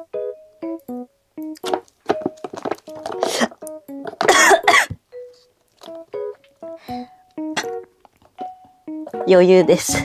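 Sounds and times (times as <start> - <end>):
woman coughing: 4.2 - 5.0.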